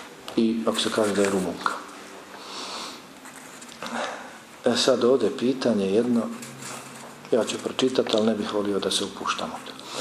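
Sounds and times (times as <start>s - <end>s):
man sniffing: 2.4s - 3.1s.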